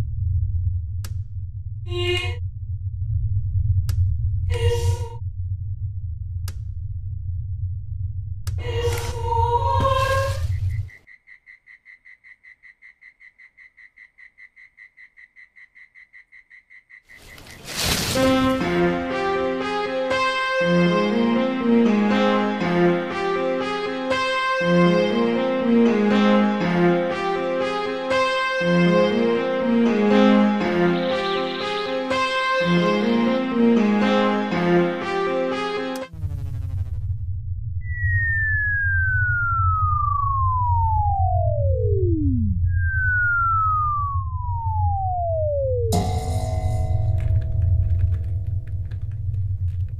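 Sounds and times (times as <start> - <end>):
loud low rumble with music: 0.0 - 9.7, 36.1 - 42.8
night insect chirping: 10.3 - 18.1
whistle-like tone sliding down: 37.8 - 45.9.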